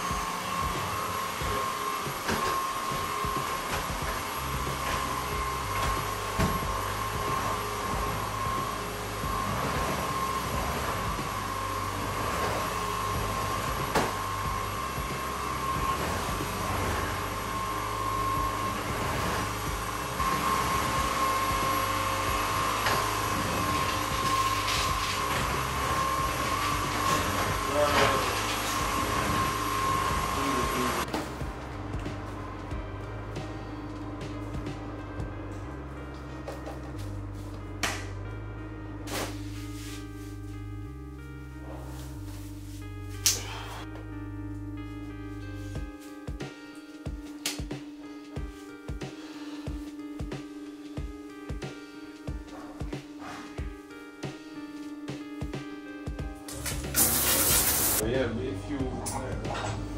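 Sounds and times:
stick vacuum cleaner running: 0:00.0 - 0:35.2, 0:55.4 - 0:58.0
background music with bass line: 0:00.0 - 0:59.9.

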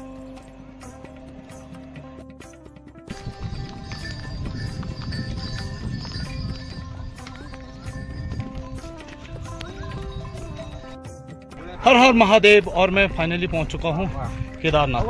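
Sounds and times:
background music: 0:00.0 - 0:15.0
mule hooves on stone path: 0:03.1 - 0:10.9.

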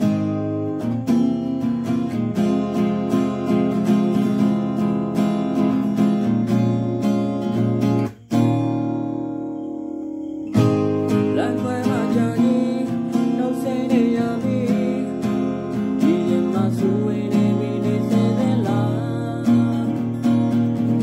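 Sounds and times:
acoustic guitar strumming: 0:00.0 - 0:21.0
man singing: 0:11.1 - 0:21.0.

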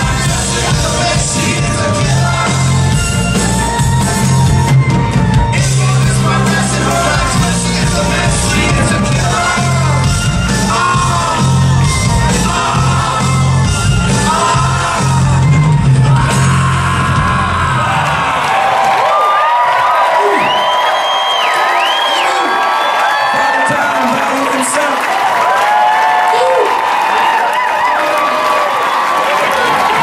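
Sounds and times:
rock band final chord: 0:05.6 - 0:17.9
crowd cheering and whooping: 0:14.2 - 0:30.0.

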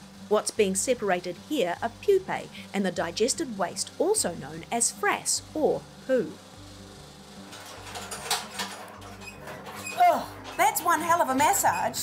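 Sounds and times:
machine humming: 0:00.0 - 0:12.0
quiet background music: 0:00.0 - 0:12.0.

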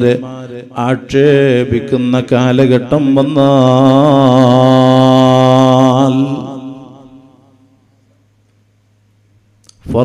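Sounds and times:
man chanting long note with echo: 0:00.0 - 0:07.6.

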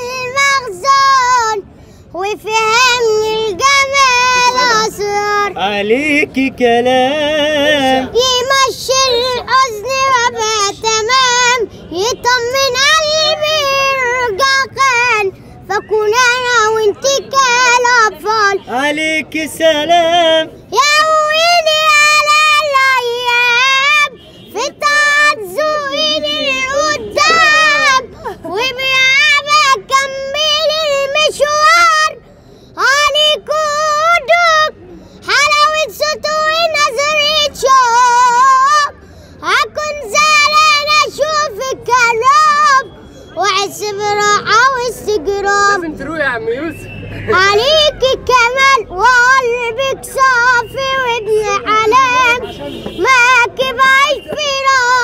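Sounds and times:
boy singing unaccompanied: 0:00.0 - 0:46.1, 0:47.3 - 0:55.0.

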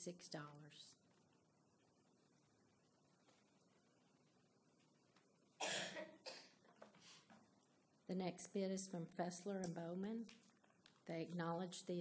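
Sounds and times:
person coughing: 0:05.6 - 0:06.6.

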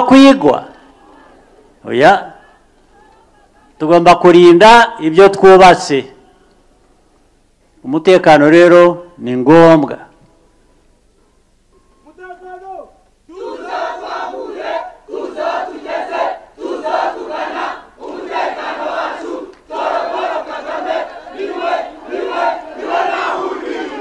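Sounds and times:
crowd chanting in unison: 0:00.7 - 0:03.8, 0:13.3 - 0:24.0.

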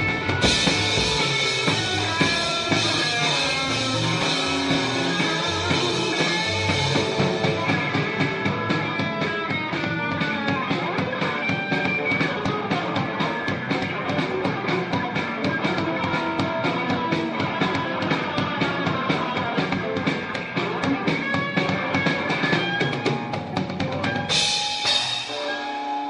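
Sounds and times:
fast drum beat: 0:00.0 - 0:26.0
instrumental rock band playing: 0:00.0 - 0:26.0.

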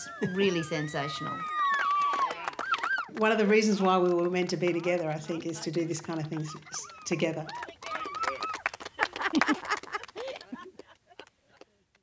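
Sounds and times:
people laughing and calling out: 0:00.0 - 0:03.1, 0:04.3 - 0:11.3.

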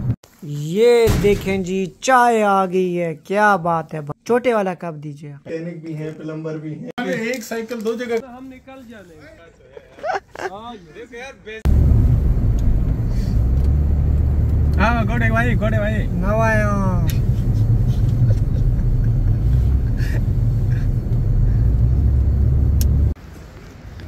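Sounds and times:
car driving rumble: 0:11.7 - 0:23.2.

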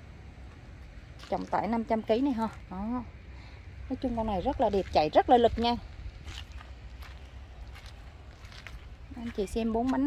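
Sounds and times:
low steady rumble: 0:00.0 - 0:10.0
footsteps on gravel: 0:00.4 - 0:02.7, 0:04.2 - 0:10.0.

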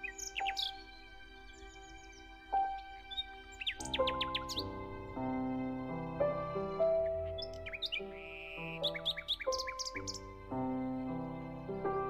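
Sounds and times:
small bird chirps: 0:00.0 - 0:04.9, 0:06.8 - 0:10.4
slow soft piano music: 0:00.0 - 0:12.0.

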